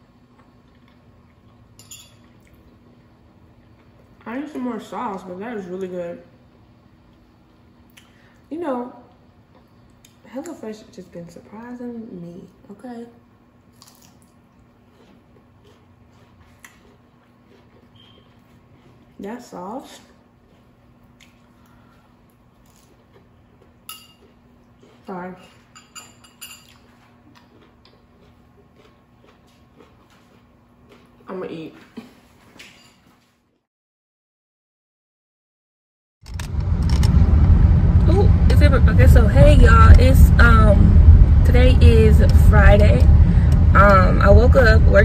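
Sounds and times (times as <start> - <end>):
low steady hum: 0.0 - 33.0, 36.3 - 45.0
person chewing: 0.3 - 2.8, 13.7 - 19.2, 20.2 - 25.7, 26.6 - 31.2
metal fork clinking on bowl: 1.8 - 2.3, 23.9 - 24.3, 25.4 - 26.8.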